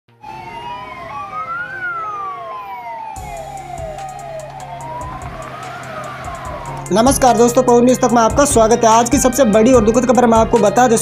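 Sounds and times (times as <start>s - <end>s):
fast sweeping siren: 0.1s - 8.3s
wailing siren: 0.1s - 8.4s.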